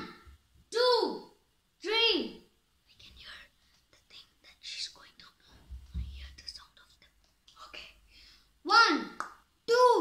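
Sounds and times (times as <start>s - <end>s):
boy whispering: 2.8s - 8.1s.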